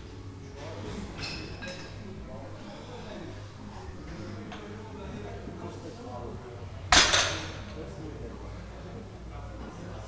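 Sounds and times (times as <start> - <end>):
low gym hum: 0.0 - 10.0.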